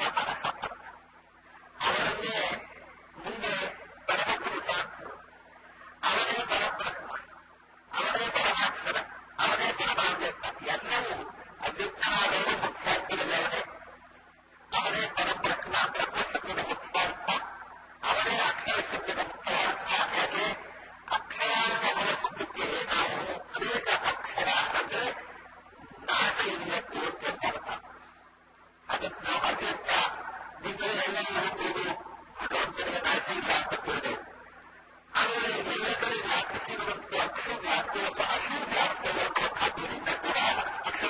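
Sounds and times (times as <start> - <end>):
man speaking: 6.0 - 7.2, 8.0 - 13.7, 14.7 - 25.3, 26.0 - 27.9, 28.9 - 34.2, 35.2 - 41.0.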